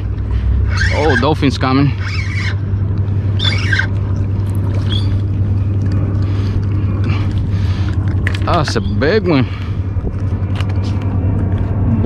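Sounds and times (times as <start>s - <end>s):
low motor drone: 0.0s - 12.0s.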